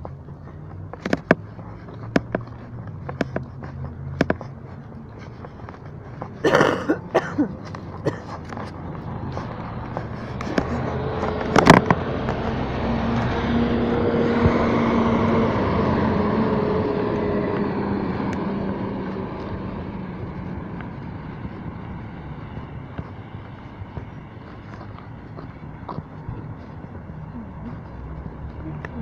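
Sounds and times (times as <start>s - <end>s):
car driving past: 8.8s - 29.0s.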